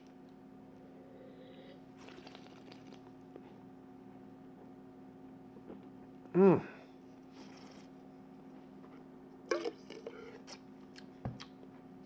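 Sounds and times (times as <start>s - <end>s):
steady low hum: 0.0s - 12.0s
person sipping: 1.0s - 3.1s, 7.4s - 8.0s.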